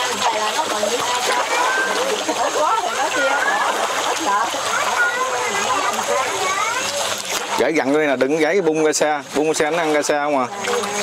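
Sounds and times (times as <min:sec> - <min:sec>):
fish splashing at water surface: 0:00.0 - 0:11.0
people chattering: 0:00.0 - 0:11.0.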